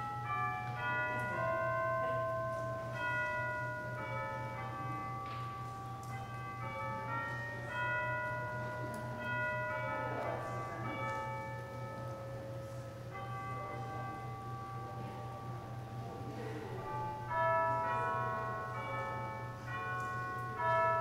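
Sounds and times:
bells ringing notes: 0.0 - 21.0.

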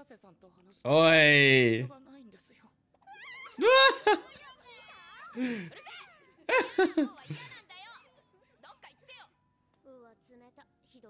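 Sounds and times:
high-pitched voices calling out: 0.9 - 1.9
loud high shout: 0.9 - 1.9, 3.6 - 4.3.

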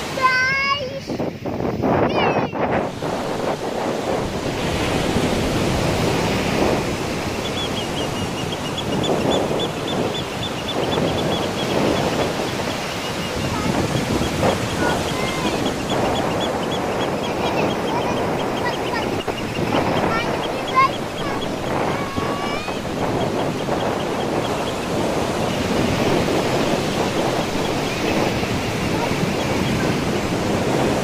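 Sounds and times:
surf breaking on a beach: 0.0 - 31.0.

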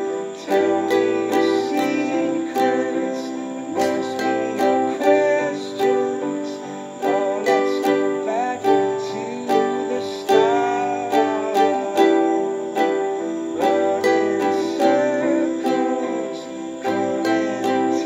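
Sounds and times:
recorded ballad with singing: 0.0 - 18.0
ukulele strumming: 0.0 - 18.0.

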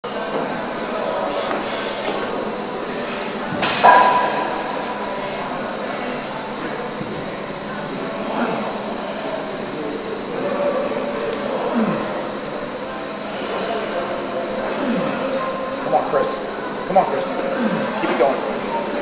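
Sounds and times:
indistinct voices: 0.0 - 19.0.

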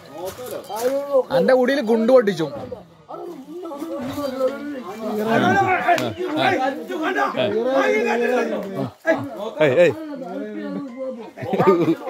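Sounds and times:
men talking: 0.0 - 12.0.

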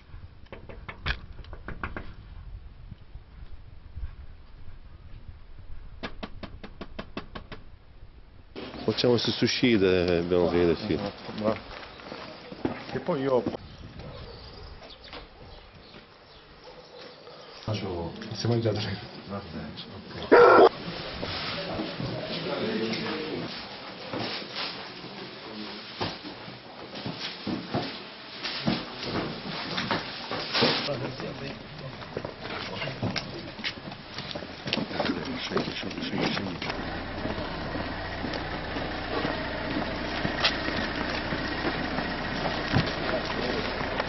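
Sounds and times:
people moving on foot: 8.6 - 16.1, 20.1 - 44.0
large dog barking: 16.6 - 17.6, 20.3 - 20.7
car engine idling: 36.4 - 44.0.

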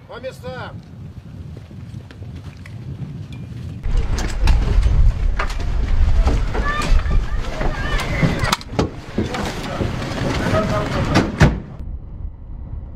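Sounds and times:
low rumble: 3.8 - 12.9.

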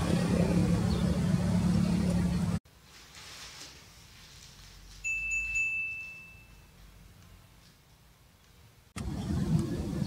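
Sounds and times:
high bell-like ding: 5.0 - 6.8.

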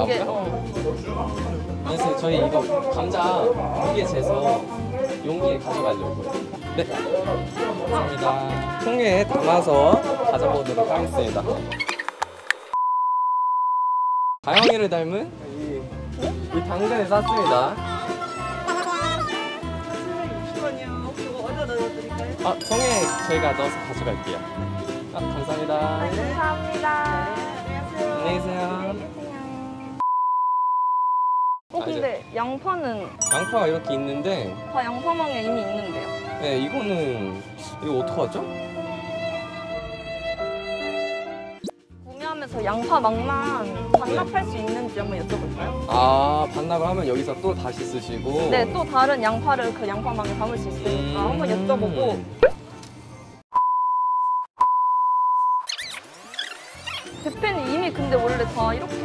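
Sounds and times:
background music with held notes: 0.0 - 11.8, 15.2 - 30.0, 33.2 - 53.3, 57.4 - 59.0
edit beeps: 53.6 - 55.8.

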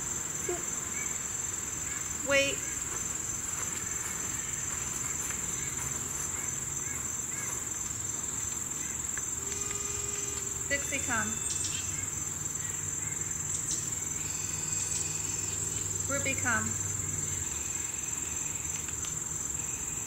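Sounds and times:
insect chorus buzzing: 0.0 - 20.0.

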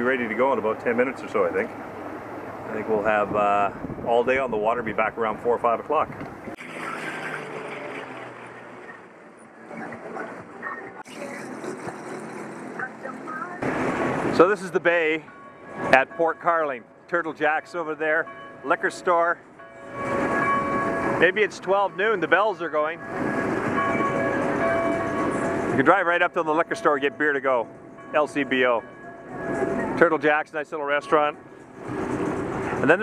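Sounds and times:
personal watercraft engine hum: 6.0 - 17.6
faint ringing bells: 14.3 - 33.0.

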